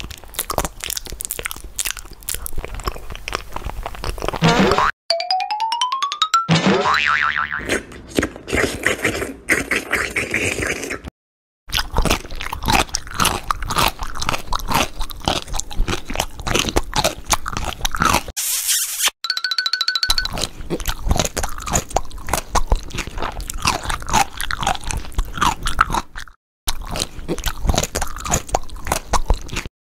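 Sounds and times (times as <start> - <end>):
crunching and biting crunchy food: 0.0 - 4.4, 7.6 - 11.1, 11.7 - 18.3, 20.3 - 29.7.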